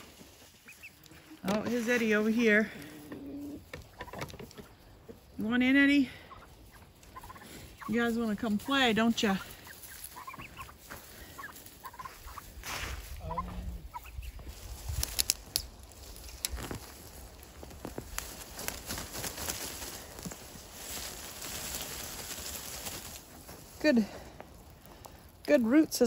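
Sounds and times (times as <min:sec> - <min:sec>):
turkeys calling softly: 0:00.0 - 0:23.8
plants rustling and crackling: 0:00.0 - 0:26.0.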